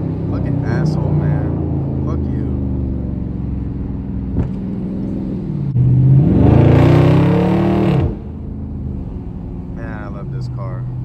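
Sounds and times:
car engine accelerating: 0:00.0 - 0:11.0.

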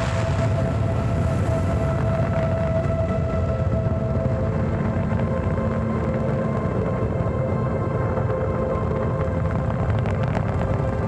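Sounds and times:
deep rocket launch rumble: 0:00.0 - 0:11.0.

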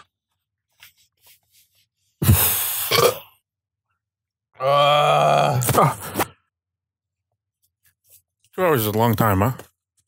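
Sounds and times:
loud burp: 0:02.8 - 0:03.4, 0:04.6 - 0:05.6.

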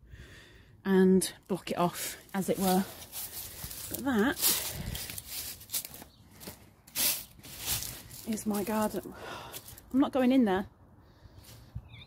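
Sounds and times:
footsteps on dry leaves: 0:02.0 - 0:09.8.

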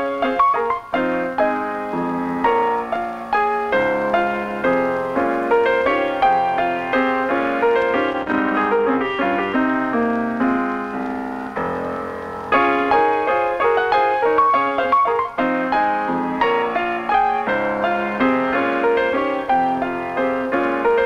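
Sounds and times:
slow piano ballad: 0:00.0 - 0:21.0.

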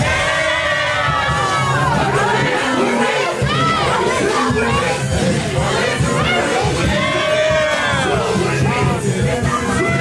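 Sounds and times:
club music with bass beat: 0:00.0 - 0:10.0
crowd shouting and cheering: 0:00.0 - 0:10.0.

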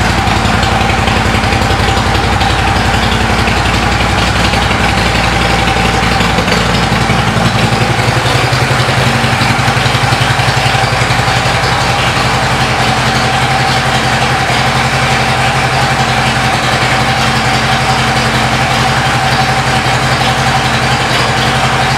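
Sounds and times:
motorcycle engine idling: 0:00.0 - 0:21.9.

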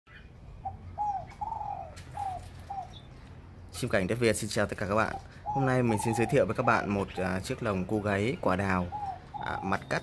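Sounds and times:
dove cooing: 0:00.6 - 0:03.2, 0:04.6 - 0:10.0.

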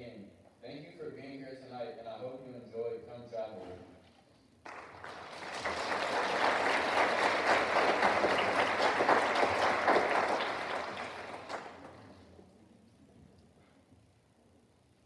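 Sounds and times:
audience applause: 0:04.6 - 0:12.3.

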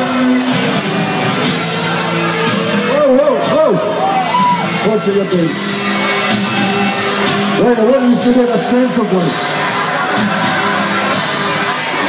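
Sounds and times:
band music: 0:00.0 - 0:12.0
crowd noise: 0:00.0 - 0:12.0.

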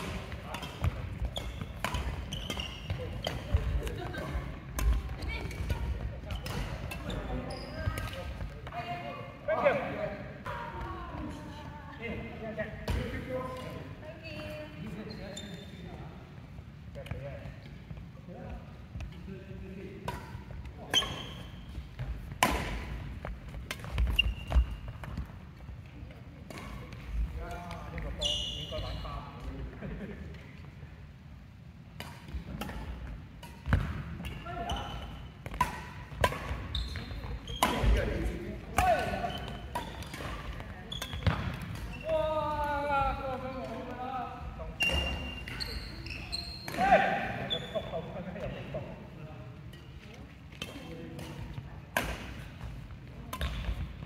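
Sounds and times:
racket striking shuttlecock: 0:00.0 - 0:04.0, 0:22.0 - 0:23.0, 0:35.4 - 0:36.6
shoe squeaks: 0:00.4 - 0:03.6, 0:05.2 - 0:08.2, 0:14.8 - 0:16.0, 0:20.8 - 0:21.8, 0:24.0 - 0:25.1, 0:28.1 - 0:29.4, 0:34.2 - 0:35.4, 0:36.4 - 0:38.2, 0:38.9 - 0:42.4, 0:44.7 - 0:48.2.

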